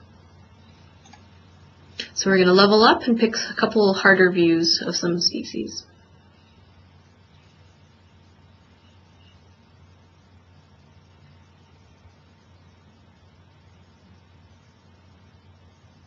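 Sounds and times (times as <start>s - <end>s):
low hum: 0.0s - 16.0s
light hiss: 5.8s - 16.0s.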